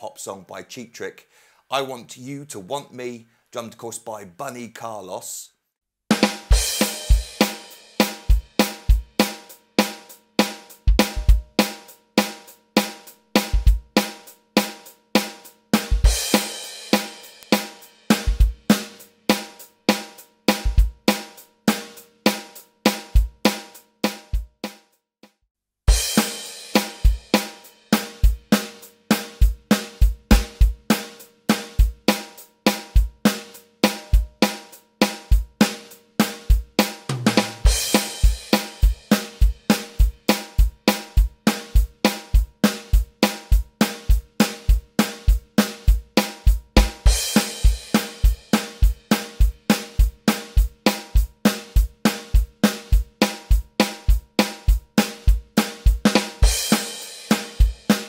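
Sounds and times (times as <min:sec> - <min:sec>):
electronic drum kit pop beat: 0:06.1 - 0:24.7, 0:25.9 - 0:58.0.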